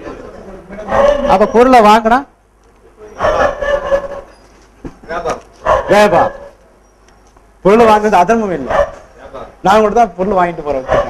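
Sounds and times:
man speaking: 0.0s - 3.7s, 5.0s - 6.5s, 7.6s - 11.0s.

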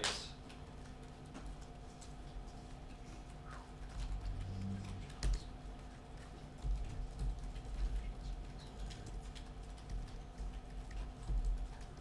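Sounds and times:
computer keyboard typing: 0.4s - 12.0s.

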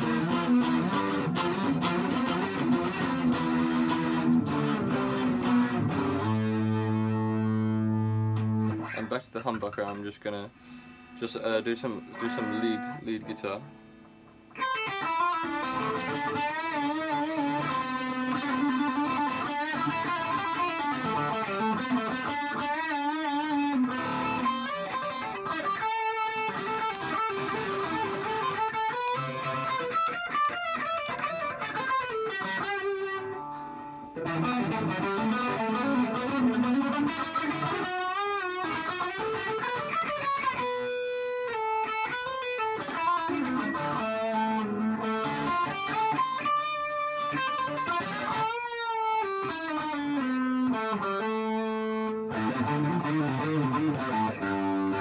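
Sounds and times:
distorted electric guitar lead: 0.0s - 55.0s.

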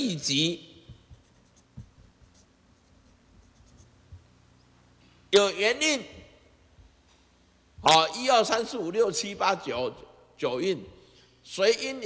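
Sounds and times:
marker pen scratching on paper: 0.9s - 4.2s.

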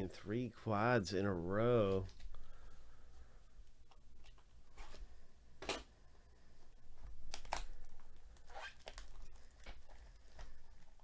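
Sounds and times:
trading cards rustling: 1.8s - 2.7s, 7.0s - 11.0s.

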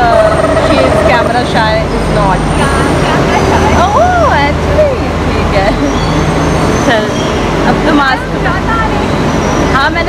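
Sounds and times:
low rumble of station noise: 0.0s - 10.0s
woman exclaiming and laughing: 3.7s - 6.0s.

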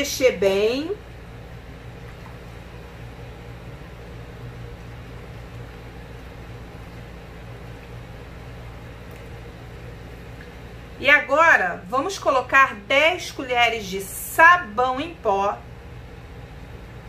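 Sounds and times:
low hum: 0.0s - 17.0s
pot simmering with soft hiss: 1.0s - 11.0s.

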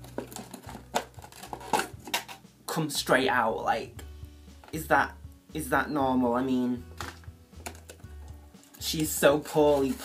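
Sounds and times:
packaging rustling and crackling: 0.0s - 2.4s, 8.6s - 10.0s.

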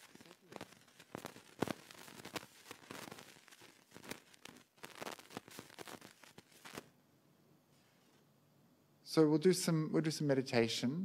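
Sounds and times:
crackling and rustling: 0.0s - 6.9s.

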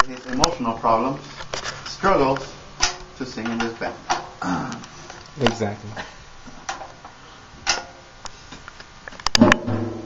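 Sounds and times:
loud knocks: 9.4s - 10.0s.

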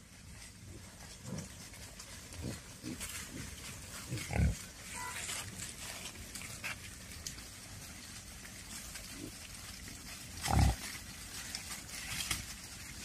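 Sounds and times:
rustle of dry leaves: 0.0s - 13.0s
wild boar grunting: 2.3s - 5.2s, 10.4s - 10.9s.

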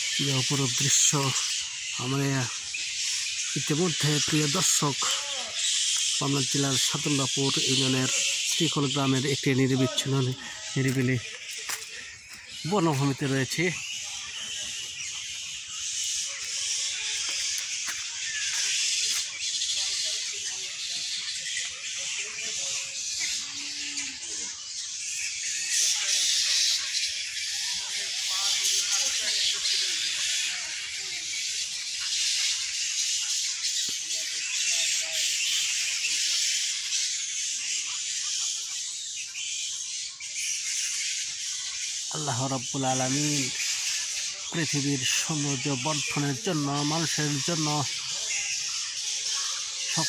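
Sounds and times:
insect chorus hissing: 0.0s - 50.0s.

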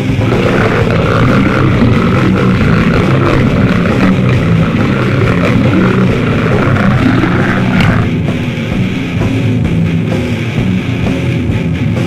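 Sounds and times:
heavily distorted guitar and bass riff: 0.0s - 12.0s.

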